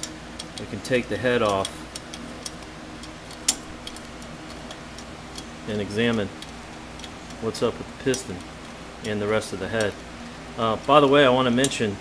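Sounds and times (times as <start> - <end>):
socket wrench clicking: 0.0 - 0.7, 1.4 - 7.4.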